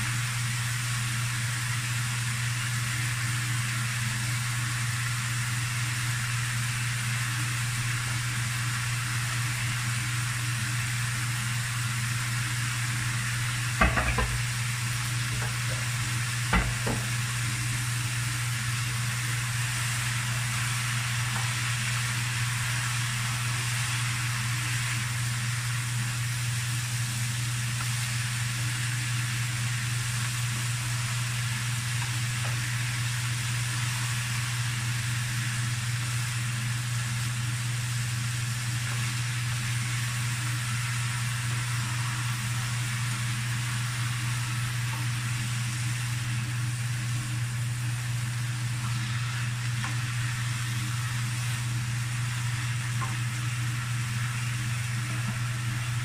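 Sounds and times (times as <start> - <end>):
food sizzling in a frying pan: 0.0 - 56.0
constant low hum: 12.7 - 26.2.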